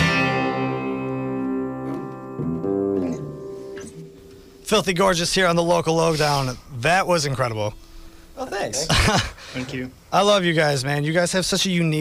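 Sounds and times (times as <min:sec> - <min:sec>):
guitar chord ringing out: 0:00.0 - 0:05.3.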